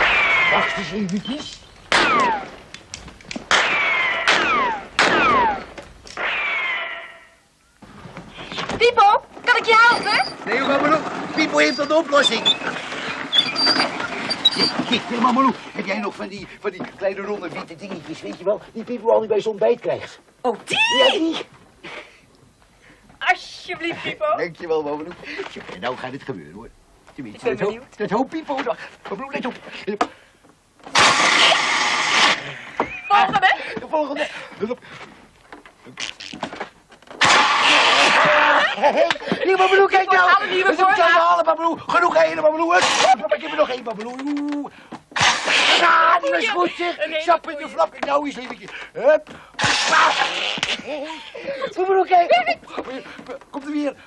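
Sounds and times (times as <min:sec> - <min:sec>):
gunshot ricochets: 0:00.0 - 0:00.9, 0:01.9 - 0:02.5, 0:03.5 - 0:07.0
fake cannon hissing blast: 0:03.5 - 0:07.3, 0:30.9 - 0:32.6, 0:37.2 - 0:38.2, 0:45.2 - 0:45.8.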